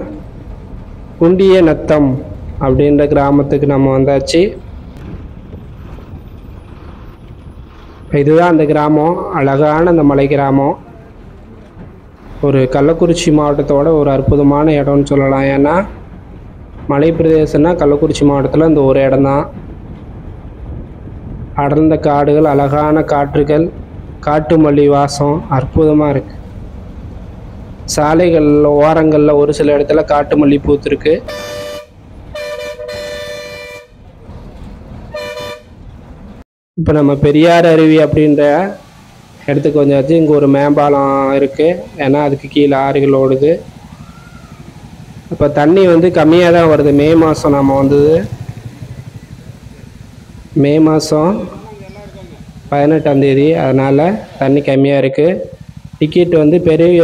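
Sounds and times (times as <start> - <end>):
bus engine and road rumble: 0.0 - 57.0
bus two-tone air horn: 31.3 - 34.0, 35.1 - 35.8.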